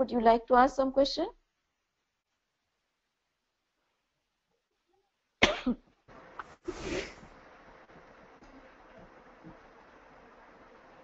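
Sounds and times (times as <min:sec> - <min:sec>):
person coughing: 0:05.4 - 0:05.9.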